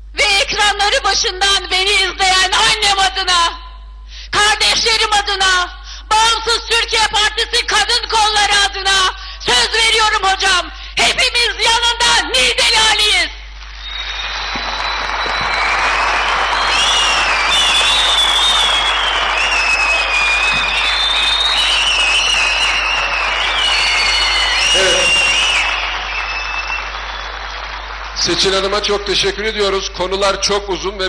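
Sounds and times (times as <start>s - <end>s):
audience applauding: 13.5s - 30.2s.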